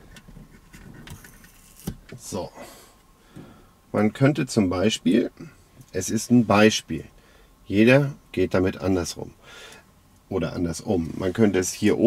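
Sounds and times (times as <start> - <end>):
plastic handling rustle and ticks: 0.0 - 2.3.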